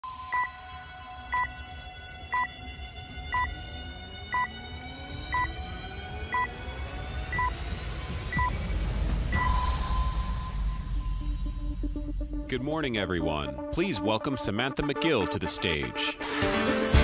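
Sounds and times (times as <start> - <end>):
synthesized tones climbing in pitch: 1.2 - 12.3
short electronic beeps: 3.3 - 3.5, 9.3 - 10.6.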